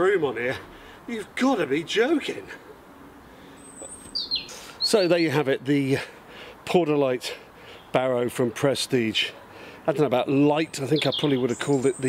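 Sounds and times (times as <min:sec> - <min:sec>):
man speaking: 0:00.0 - 0:02.7, 0:04.8 - 0:12.0
small bird whistling and chirping: 0:03.6 - 0:05.1.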